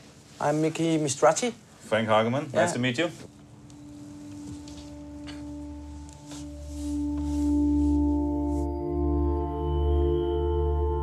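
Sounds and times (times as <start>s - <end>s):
ambient music held tones: 2.6s - 11.0s.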